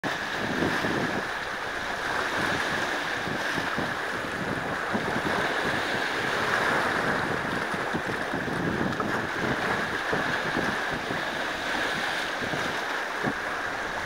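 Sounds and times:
small waves washing over rocks: 0.0 - 14.0
water splashing against rocks: 0.0 - 14.0.

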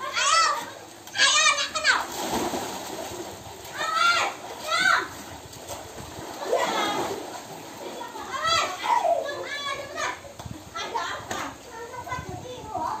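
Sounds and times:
splashing water: 0.0 - 12.3
children shouting: 8.0 - 10.2.

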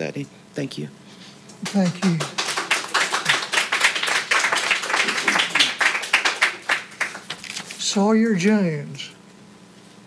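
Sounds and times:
person saying thank you: 1.6 - 2.4
audience applauding: 1.6 - 7.6.

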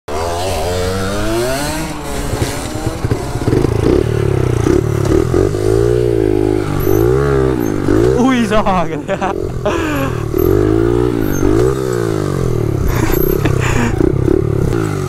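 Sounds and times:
minibike engine revving: 0.1 - 15.0.

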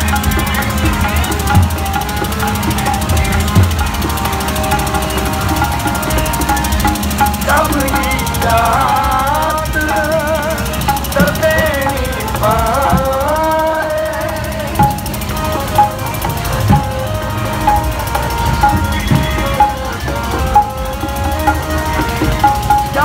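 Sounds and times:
devotional hymn singing over loudspeakers: 0.0 - 23.0.

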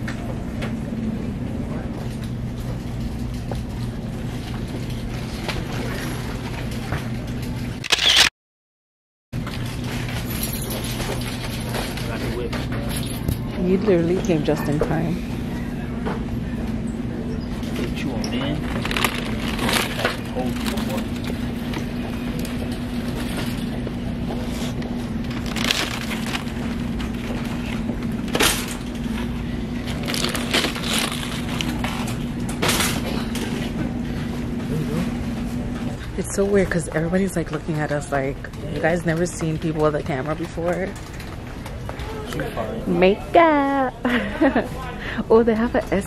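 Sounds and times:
low supermarket hum: 0.0 - 8.3, 9.4 - 46.0
plastic shrink-wrap crinkling: 18.6 - 21.3, 25.2 - 27.8, 29.8 - 32.1.

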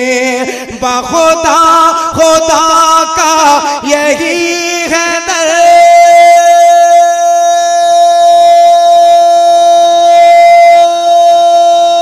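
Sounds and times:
person singing long note: 5.4 - 12.0.

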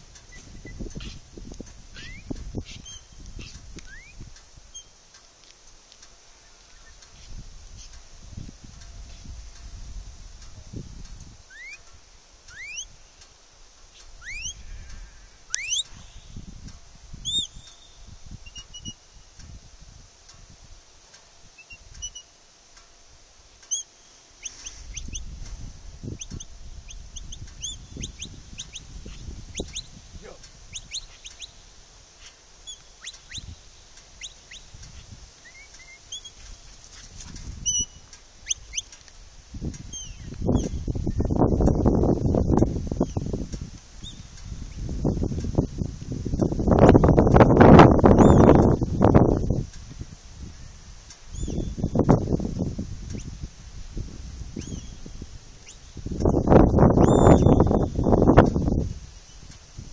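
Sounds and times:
birds chirping: 0.0 - 5.1, 6.3 - 8.0, 11.4 - 13.3, 13.9 - 16.5, 17.2 - 19.1, 21.5 - 22.4, 23.5 - 39.1, 39.7 - 43.4, 48.0 - 49.4, 50.5 - 52.0, 54.5 - 59.6
wind rumble on microphone: 0.0 - 59.9.

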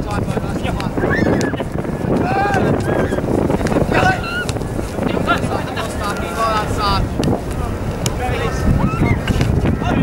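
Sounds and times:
wind buffeting microphone: 0.0 - 10.0
distant shouted calls: 0.9 - 10.0.

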